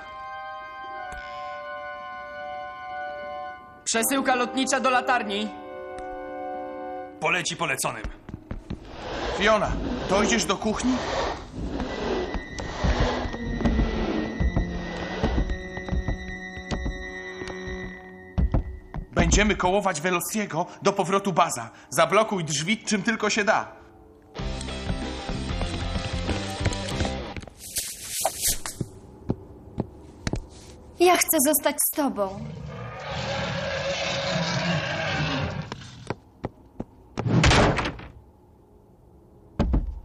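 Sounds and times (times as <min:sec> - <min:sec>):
heavy door bang: 0:37.2 - 0:38.2.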